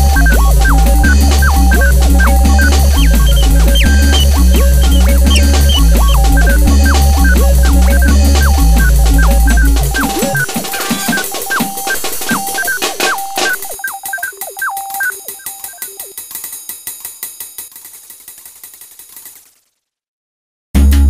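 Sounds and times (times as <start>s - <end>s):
synth notes dropping in pitch: 0.0s - 16.1s
clicky percussion: 0.0s - 19.6s.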